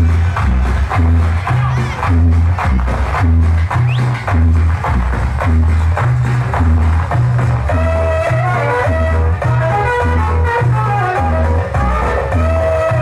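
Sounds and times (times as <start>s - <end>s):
dance music over sound system: 0.0s - 13.0s.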